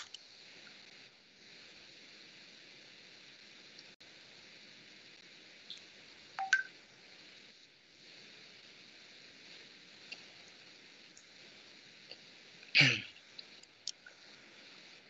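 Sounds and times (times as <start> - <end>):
microphone hiss: 0.0 - 15.0.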